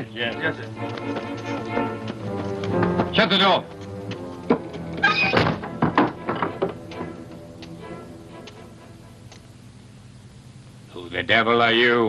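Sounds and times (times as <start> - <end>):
film score music: 0.0 - 10.2
heavy wooden door shutting: 4.5 - 7.2.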